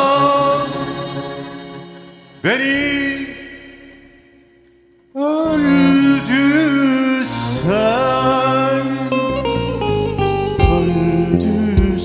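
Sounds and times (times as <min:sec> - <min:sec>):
man singing: 0:00.0 - 0:01.4, 0:02.4 - 0:04.1, 0:05.1 - 0:09.8, 0:10.6 - 0:12.0
keyboard: 0:00.0 - 0:12.0
saz: 0:00.0 - 0:12.0
bass line: 0:02.4 - 0:12.0
drum hits: 0:10.6 - 0:11.0, 0:11.8 - 0:12.0.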